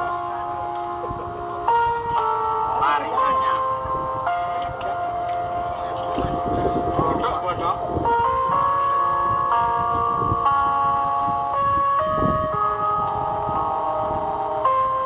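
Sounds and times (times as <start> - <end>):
faint voices: 0.0 - 11.6
jingle-like melody: 0.0 - 15.0.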